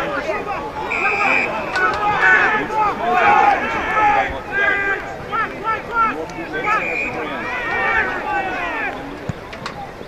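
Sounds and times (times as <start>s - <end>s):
voices shouting calls: 0.0s - 10.0s.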